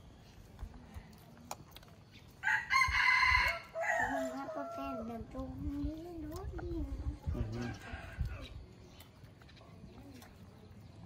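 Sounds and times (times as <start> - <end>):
rooster crowing: 2.4 - 5.1.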